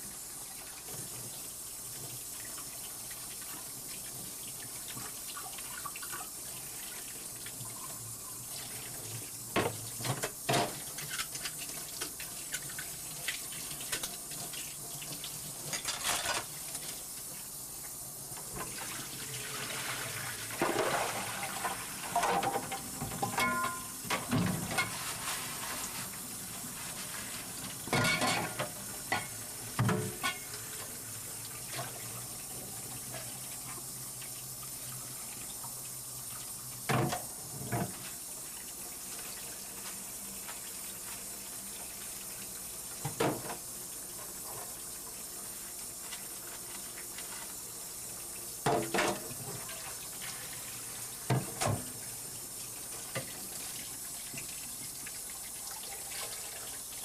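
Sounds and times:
tap water running into sink: 0.4s - 25.0s, 25.8s - 57.0s.

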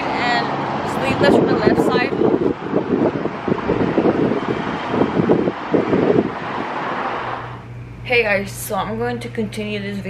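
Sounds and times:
wind buffeting microphone: 0.0s - 7.7s.

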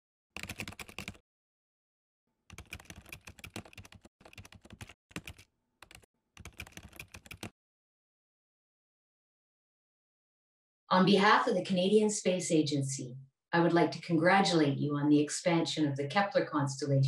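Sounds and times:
computer keyboard typing: 0.4s - 1.2s, 2.5s - 7.5s.

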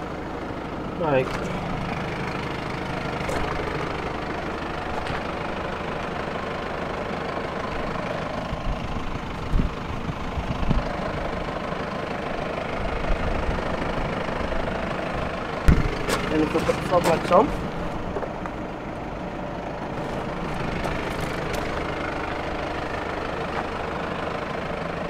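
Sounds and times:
car engine idling: 0.0s - 25.0s.

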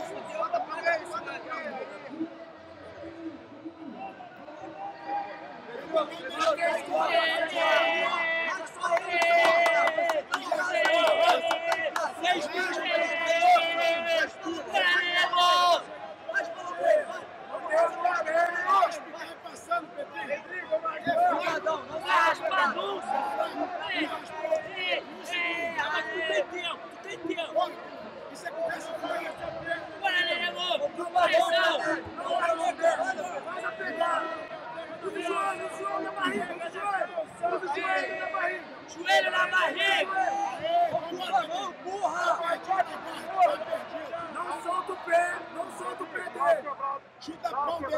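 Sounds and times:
crowd chatter: 0.0s - 47.9s.

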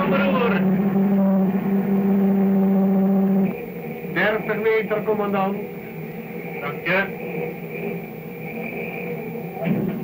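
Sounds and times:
faint high whine: 0.0s - 10.0s
noisy film soundtrack: 0.0s - 10.0s
steady low hum: 0.0s - 10.0s.

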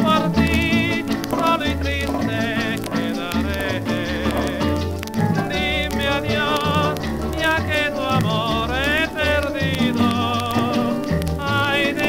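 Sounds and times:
dance band playing rumba: 0.0s - 12.0s
record surface crackle: 0.0s - 12.0s.

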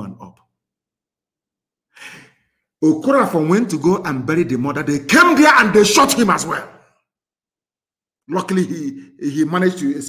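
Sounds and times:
man speaking: 0.0s - 0.5s, 2.8s - 6.8s, 8.3s - 10.0s
man breathing: 1.9s - 2.7s.

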